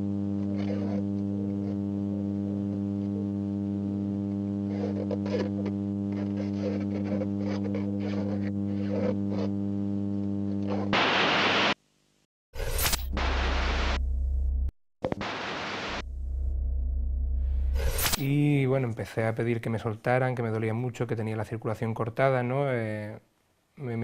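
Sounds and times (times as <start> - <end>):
electrical mains hum: 0.0 - 12.3
loud static hiss: 0.0 - 14.0, 15.1 - 16.0, 17.6 - 18.4
low drone: 15.9 - 18.3.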